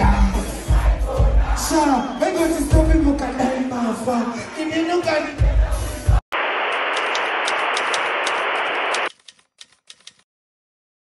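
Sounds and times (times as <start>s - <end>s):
static hiss: 6.4s - 9.1s
rapid typewriter-like clicks: 9.0s - 10.3s.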